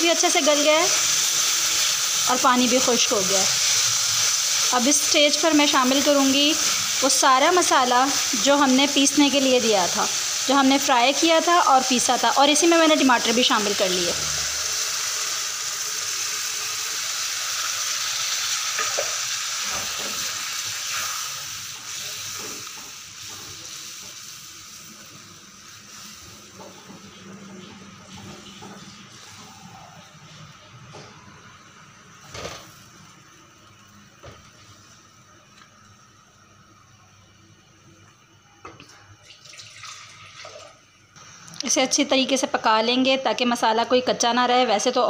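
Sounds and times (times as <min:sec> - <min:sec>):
paste sizzling in a hot pan: 0:00.0 - 0:27.2.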